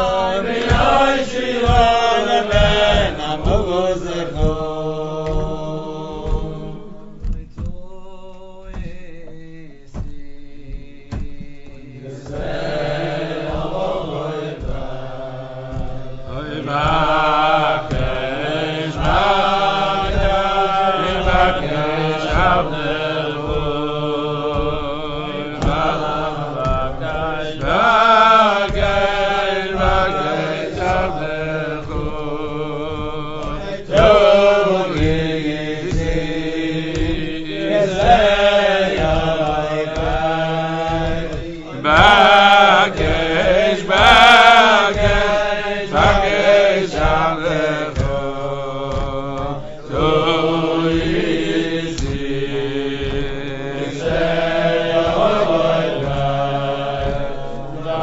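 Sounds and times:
voices singing chant-like melody: 0.0 - 58.0.

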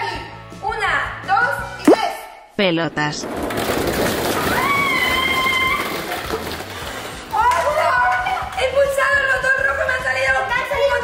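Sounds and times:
small balls clattering in a box: 3.2 - 7.9.

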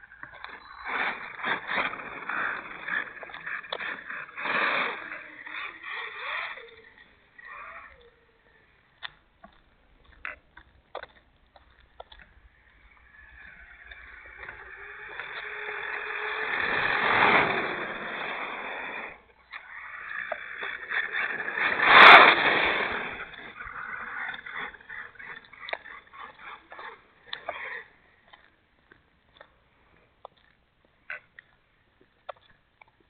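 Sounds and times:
patchy rumbles: 0.0 - 27.9
wind and road noise: 9.9 - 19.3, 20.1 - 24.6.

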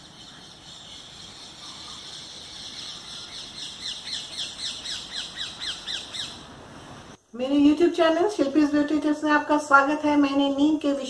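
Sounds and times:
bird calling: 0.0 - 7.1.

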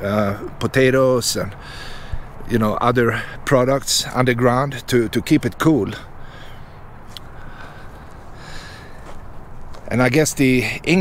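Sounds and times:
low outdoor background: 0.0 - 11.0.

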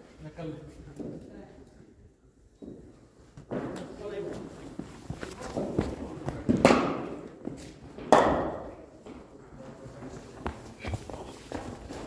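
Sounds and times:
footsteps on artificial turf: 4.3 - 6.6.

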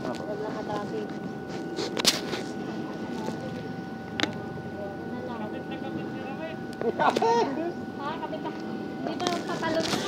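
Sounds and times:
faint high hum: 0.0 - 10.0
voices talking: 0.0 - 10.0.

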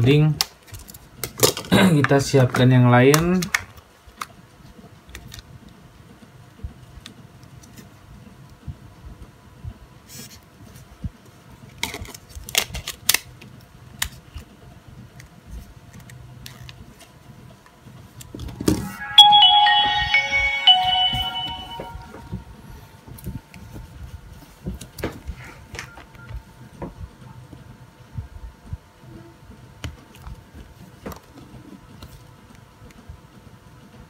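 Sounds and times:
phone startup tune: 18.4 - 22.7.

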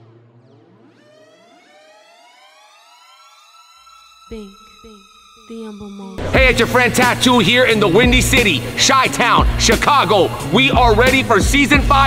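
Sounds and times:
low steady synth tone: 0.0 - 6.4
falling synth sweeps: 0.0 - 7.2
rising synth tones: 0.0 - 8.4.

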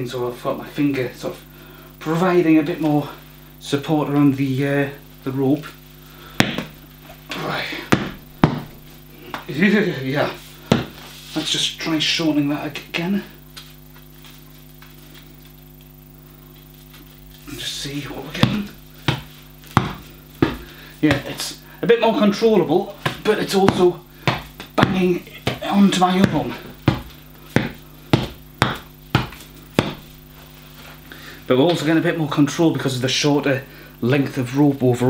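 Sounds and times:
electrical hum: 0.0 - 35.0
ball on rope knocking: 6.4 - 6.8, 7.9 - 9.4, 10.7 - 11.0, 18.3 - 21.4, 23.0 - 30.2.

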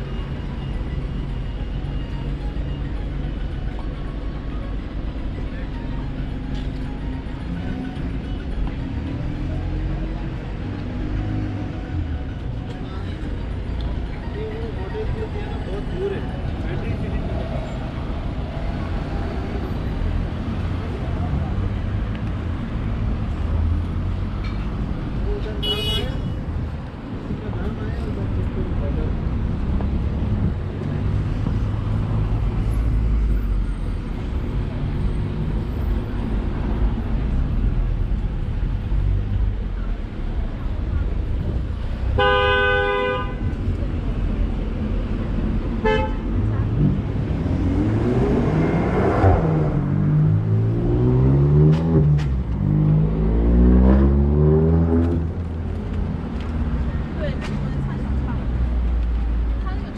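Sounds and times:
rumble of passing vehicles: 0.0 - 59.9
car horn honking: 25.6 - 26.4, 42.2 - 43.5, 45.8 - 46.3
vehicle engine accelerating: 46.4 - 59.5.

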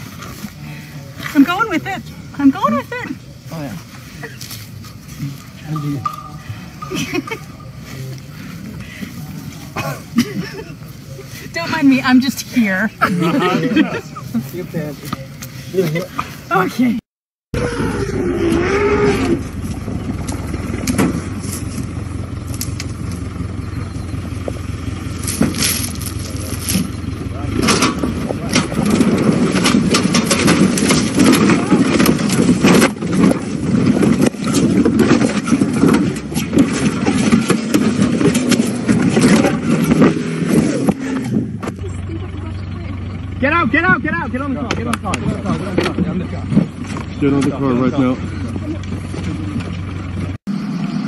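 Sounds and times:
people's voices: 0.0 - 17.0, 25.5 - 50.2
vehicle engine humming: 0.0 - 51.0.

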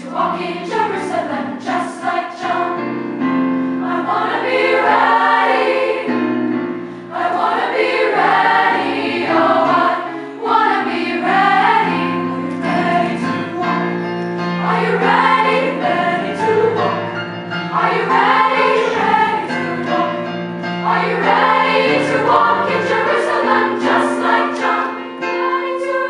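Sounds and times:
youth choir singing: 0.0 - 3.0, 3.8 - 26.0
piano accompaniment: 0.0 - 26.0.

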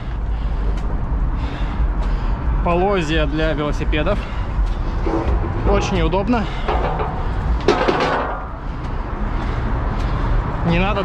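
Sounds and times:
steady low rumble: 0.0 - 11.0
bicycle rattling: 4.0 - 9.2
wheel rolling in steel channel: 5.0 - 8.7.

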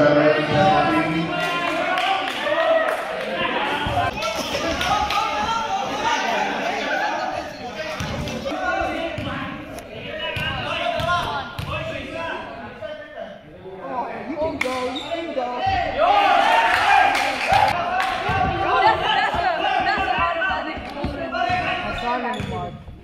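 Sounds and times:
chatter of voices: 0.0 - 11.0, 16.9 - 22.4.

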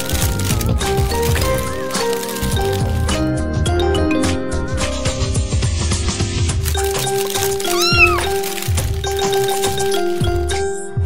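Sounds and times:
background music with steady beat: 0.0 - 7.0
cat meowing: 7.6 - 8.4.

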